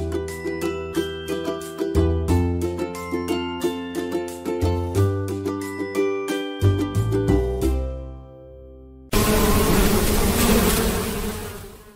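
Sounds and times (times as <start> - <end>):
bees buzzing: 9.1 - 11.9.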